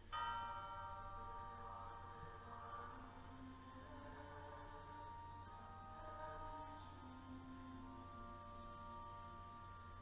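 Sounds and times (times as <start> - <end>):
bell ringing: 0.0 - 9.9
low sustained background tone: 0.0 - 10.0.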